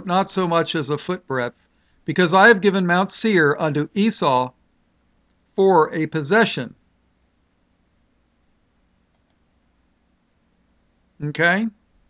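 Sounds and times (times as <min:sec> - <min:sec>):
faint low hum: 0:00.0 - 0:12.0
faint short clicks: 0:09.1 - 0:09.5.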